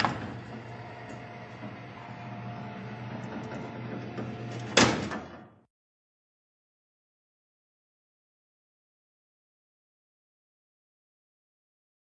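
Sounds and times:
sliding jail door rumbling: 0.0s - 5.6s.

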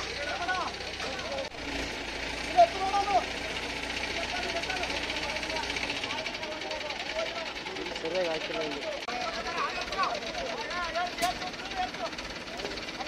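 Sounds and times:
men shouting: 0.0s - 1.5s, 2.3s - 8.0s, 9.0s - 13.0s
vehicle engine running: 0.0s - 13.0s.

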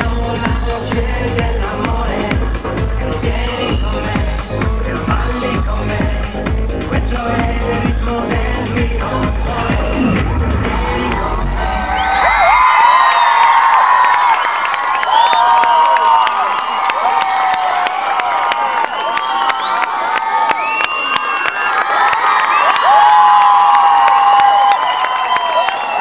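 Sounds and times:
band music: 0.0s - 12.3s
crowd cheering and screaming: 7.6s - 26.0s
people clapping: 11.9s - 26.0s.

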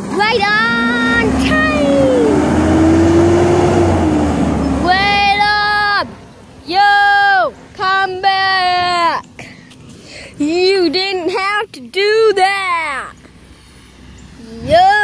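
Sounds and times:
garbage truck engine revving: 0.0s - 6.4s.

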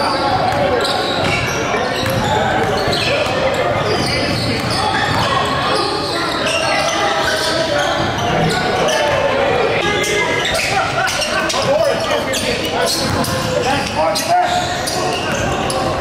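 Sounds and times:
hubbub of indistinct voices: 0.0s - 16.0s
basketballs bouncing on hardwood: 0.4s - 5.3s.

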